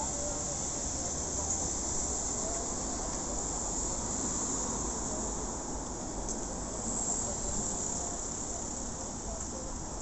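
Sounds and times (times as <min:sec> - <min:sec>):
steady high-pitched hiss: 0:00.0 - 0:10.0
traffic rumble: 0:00.0 - 0:10.0.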